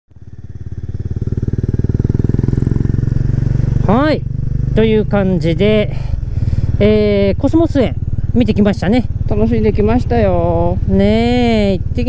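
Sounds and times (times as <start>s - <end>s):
motorcycle engine running: 0.1s - 12.0s.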